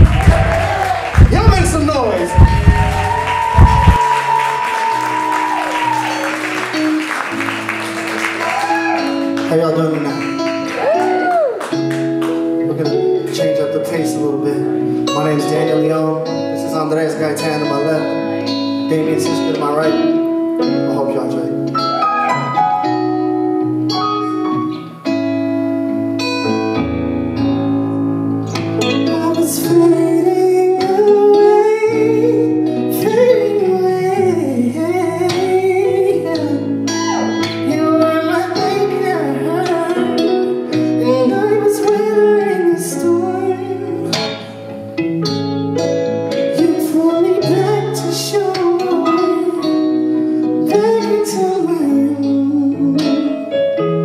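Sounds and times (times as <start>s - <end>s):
keyboard and electric guitar band: 0.0s - 54.0s
lead vocal singing: 28.9s - 44.6s, 46.4s - 50.0s.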